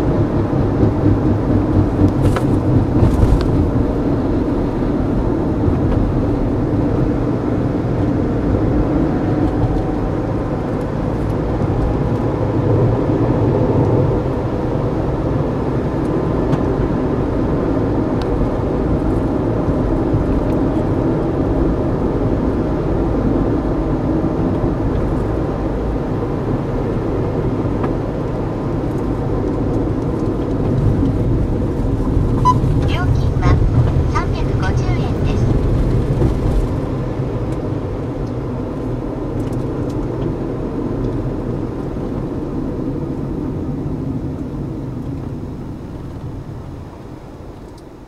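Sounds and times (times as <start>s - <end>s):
car interior road rumble: 0.0s - 48.0s.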